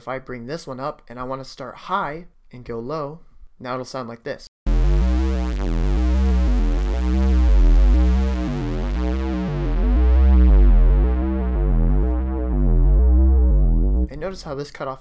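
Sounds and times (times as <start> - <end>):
synthesizer arpeggio: 4.7 - 14.1
deep bass notes: 4.7 - 14.4.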